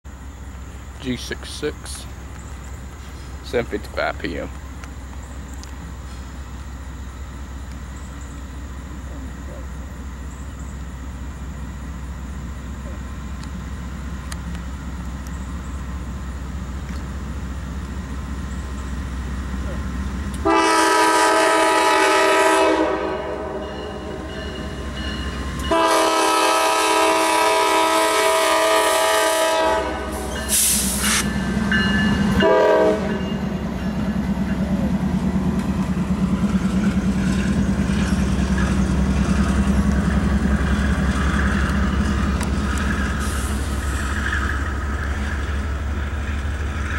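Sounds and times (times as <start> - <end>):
diesel engine drone: 0.1 - 20.6, 22.8 - 46.9
locomotive horn blasts: 20.4 - 24.4, 25.6 - 31.2, 32.2 - 33.4
train wheel clatter: 30.2 - 46.9.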